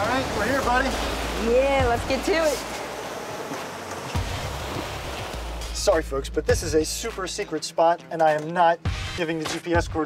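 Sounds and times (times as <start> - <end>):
wind and water rushing: 0.0 - 6.0.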